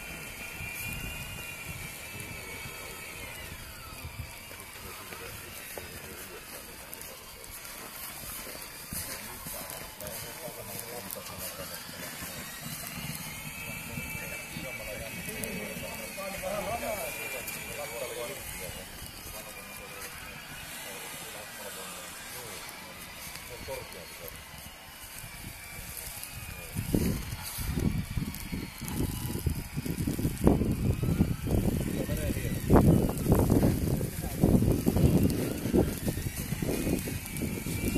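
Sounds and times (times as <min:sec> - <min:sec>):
faint electric whine: 0:00.0 - 0:37.9
feeding robot driving: 0:00.0 - 0:37.9
indistinct voices: 0:00.0 - 0:37.9
low rumbling and crunching: 0:00.0 - 0:37.9
outdoor background noise: 0:00.0 - 0:37.9.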